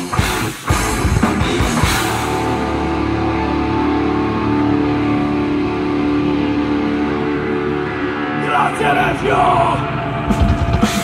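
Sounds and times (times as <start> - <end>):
electric guitars sustained chord: 0.2 - 11.0.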